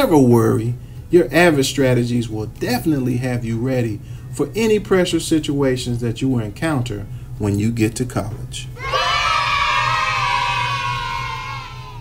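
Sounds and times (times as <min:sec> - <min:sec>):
high-pitched cheering whoop: 0:08.8 - 0:12.0.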